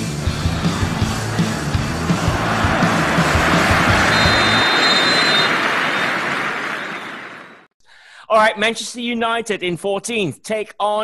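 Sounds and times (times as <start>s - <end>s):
rock music with drums and bass: 0.0s - 4.3s.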